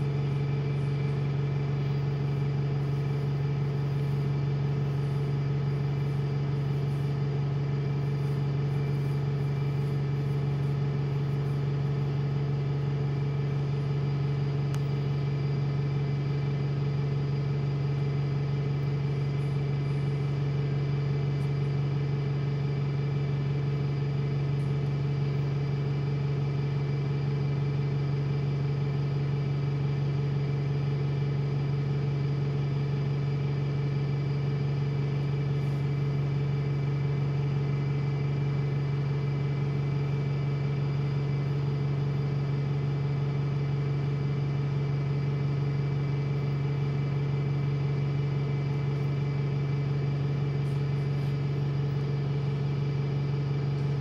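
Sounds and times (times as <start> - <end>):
bus engine idling: 0.0 - 54.0.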